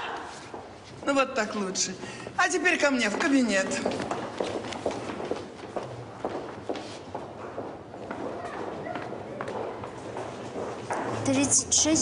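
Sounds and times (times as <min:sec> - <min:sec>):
footsteps on hard floor: 0:03.0 - 0:12.0.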